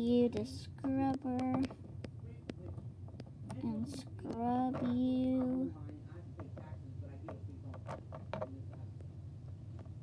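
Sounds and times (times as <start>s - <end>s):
low steady room hum: 0.0s - 10.0s
toy scrubber rubbing plastic: 3.7s - 5.7s.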